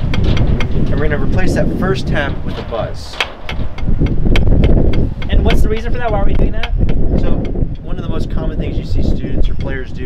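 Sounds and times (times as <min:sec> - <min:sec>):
wind rumbling on microphone: 0:00.0 - 0:10.0
drumsticks tapping practice pad: 0:03.2 - 0:08.0, 0:09.4 - 0:09.9.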